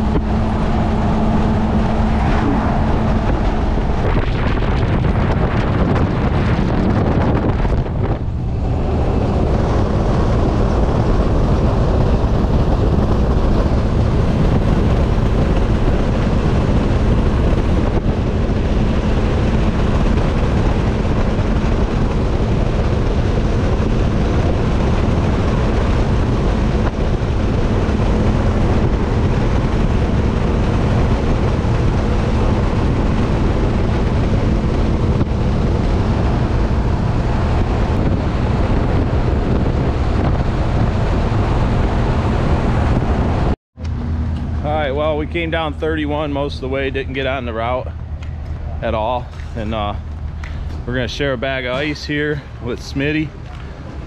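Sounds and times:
low engine hum: 0.0s - 54.0s
vehicle road noise: 0.0s - 54.0s
wind rushing on microphone: 0.0s - 54.0s.

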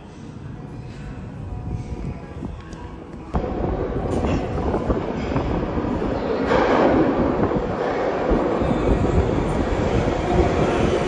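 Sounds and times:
subway train rumbling in tunnel: 0.0s - 11.0s.

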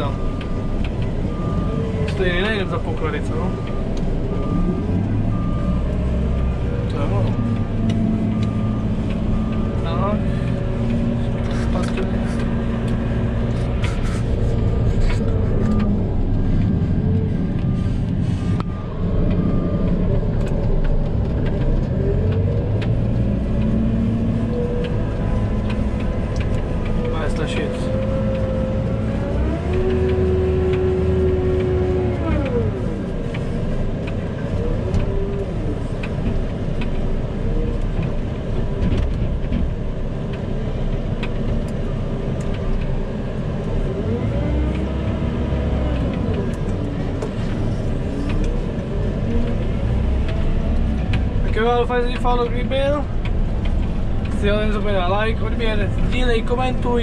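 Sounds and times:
diesel engine revving: 0.0s - 57.0s.

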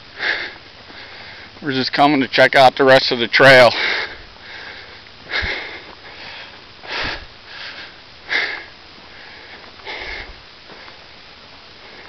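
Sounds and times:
person breathing hard: 0.1s - 1.6s, 3.7s - 11.0s, 11.8s - 12.0s.

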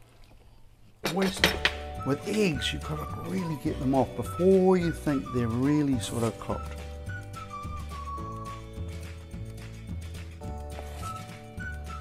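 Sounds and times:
man talking: 1.1s - 6.7s.

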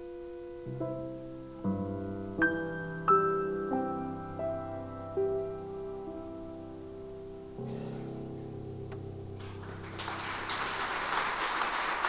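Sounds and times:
piano chord: 0.0s - 11.2s
audience applause: 9.4s - 12.0s.

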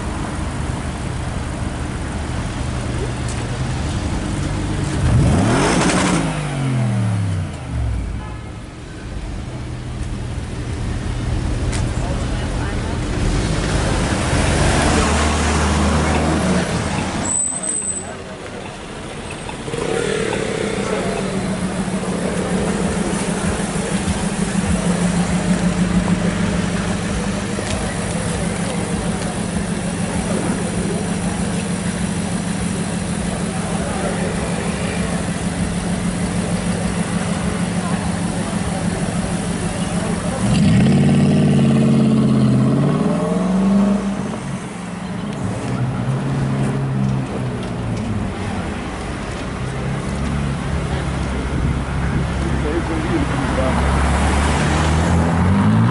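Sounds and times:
car engine idling and revving: 0.0s - 55.9s.

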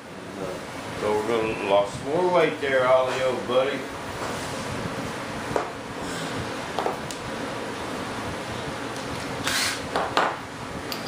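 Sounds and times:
workshop background noise: 0.0s - 11.0s.

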